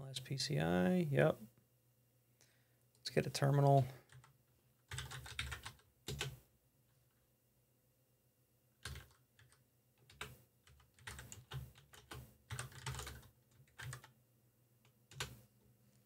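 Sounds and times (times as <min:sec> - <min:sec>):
typing on computer keyboard: 0:04.0 - 0:06.4, 0:08.8 - 0:14.2, 0:14.8 - 0:15.4.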